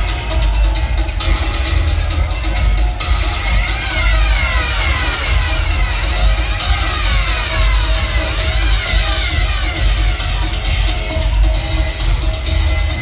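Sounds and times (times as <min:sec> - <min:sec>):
dub reggae music: 0:00.0 - 0:13.0.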